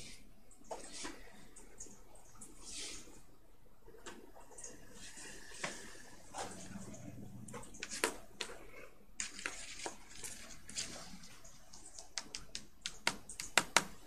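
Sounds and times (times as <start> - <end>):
faint room noise: 0.0 - 14.0.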